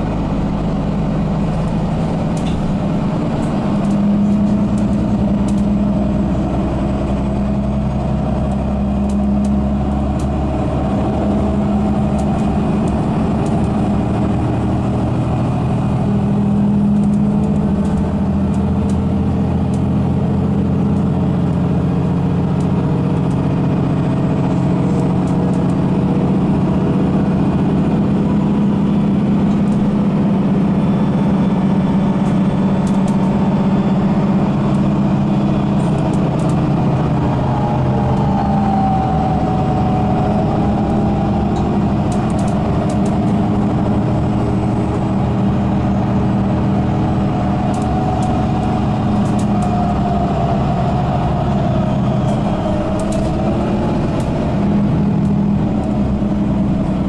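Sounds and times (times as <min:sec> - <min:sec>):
bus engine drone: 0:00.0 - 0:57.0
road noise: 0:00.0 - 0:57.0.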